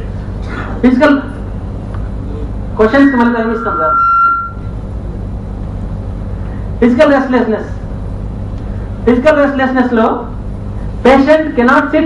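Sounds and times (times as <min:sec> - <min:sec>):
low hum: 0:00.0 - 0:09.2
microphone feedback ringing tone: 0:02.8 - 0:04.8.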